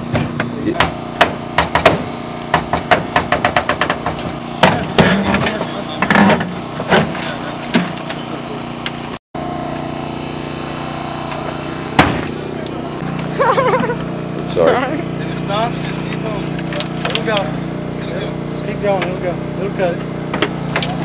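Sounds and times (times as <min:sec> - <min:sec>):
small engine running: 0:00.0 - 0:21.0
metal and glass cracking: 0:15.8 - 0:17.5.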